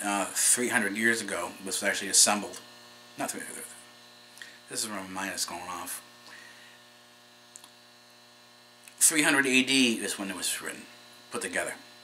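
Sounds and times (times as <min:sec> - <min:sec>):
faint electrical hum: 0:00.0 - 0:12.0
small click: 0:07.5 - 0:07.8.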